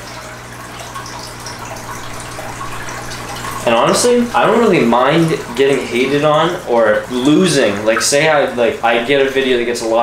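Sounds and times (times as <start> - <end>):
water trickling and splashing: 0.0 - 10.0.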